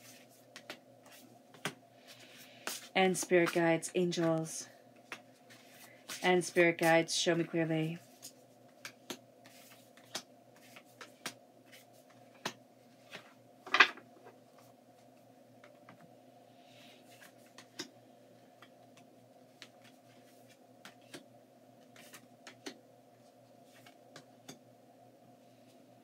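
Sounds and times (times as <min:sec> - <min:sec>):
low room hum: 0:00.0 - 0:26.0
cards tapping and rustling: 0:00.2 - 0:01.8, 0:08.1 - 0:13.8, 0:19.5 - 0:22.8.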